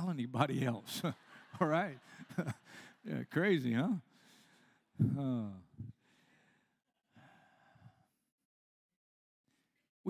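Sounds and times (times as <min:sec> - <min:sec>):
man breathing softly: 0:04.1 - 0:05.1, 0:05.8 - 0:08.2.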